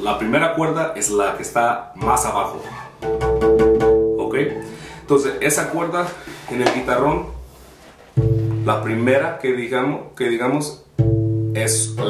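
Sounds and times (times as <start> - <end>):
plucked bass guitar string: 2.0 - 5.0, 8.2 - 9.2, 11.0 - 12.0.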